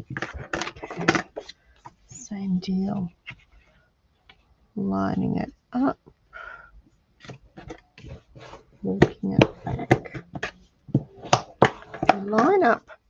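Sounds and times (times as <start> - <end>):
cardstock tapping and rustling: 0.0 - 2.0, 7.2 - 12.7
person speaking: 2.1 - 3.2, 8.4 - 10.2, 12.0 - 13.0.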